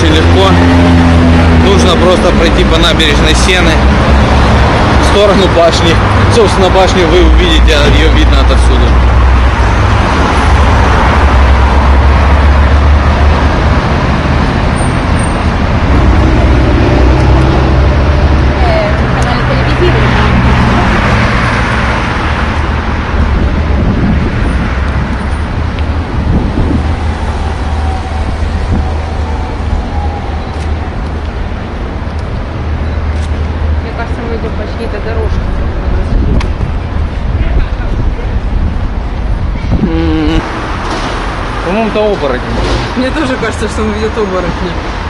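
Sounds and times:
city road traffic: 0:00.0 - 0:45.0.

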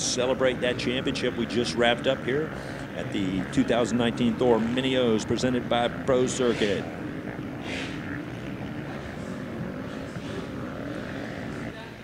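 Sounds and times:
motocross bike engines revving: 0:00.0 - 0:12.0.

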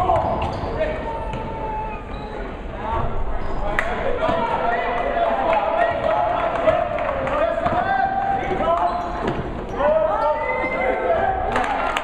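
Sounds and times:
overlapping voices echoing: 0:04.1 - 0:08.9
basketball bouncing on hardwood: 0:07.6 - 0:07.9.

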